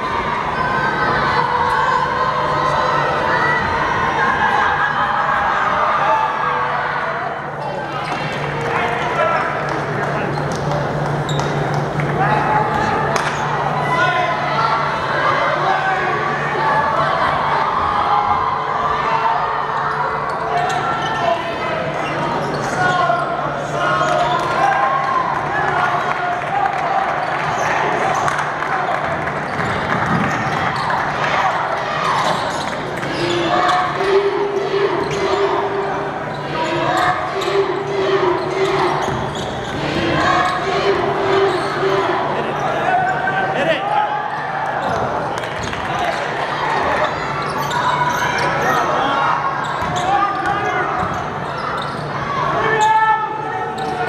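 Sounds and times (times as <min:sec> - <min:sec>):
indistinct voices: 0:00.0 - 0:54.0.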